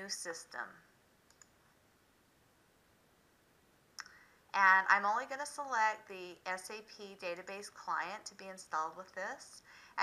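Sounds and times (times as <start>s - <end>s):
computer mouse clicks: 1.2s - 1.6s.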